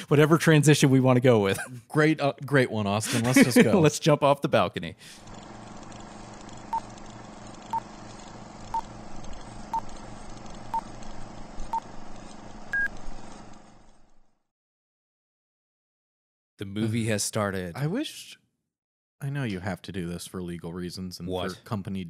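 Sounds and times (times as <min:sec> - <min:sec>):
steady hum and hiss: 0:03.0 - 0:04.0.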